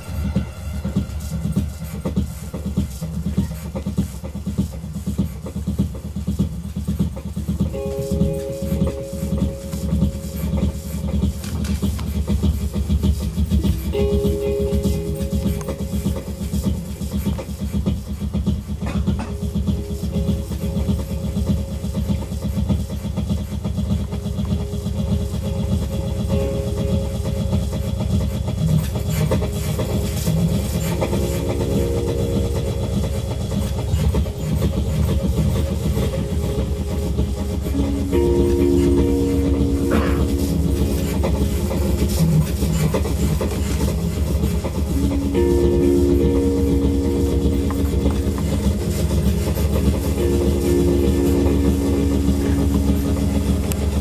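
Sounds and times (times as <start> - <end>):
fast rhythmic low synth pulse: 0.0 - 54.0
held synth tones: 29.1 - 54.0.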